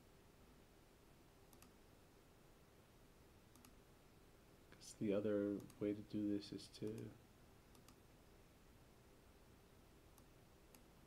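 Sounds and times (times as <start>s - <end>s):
computer mouse clicks: 1.5s - 1.8s, 3.5s - 3.8s, 5.6s - 5.8s, 6.8s - 7.1s, 7.7s - 8.0s, 10.1s - 10.9s.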